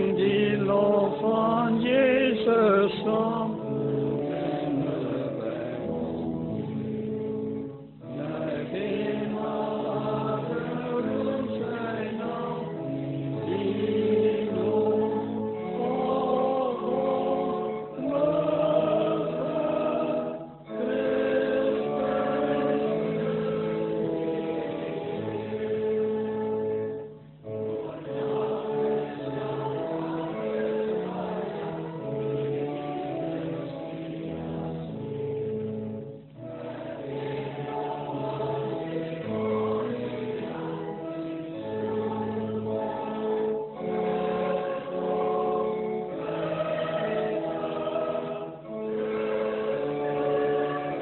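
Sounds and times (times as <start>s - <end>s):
congregation singing a hymn: 0.0s - 51.0s.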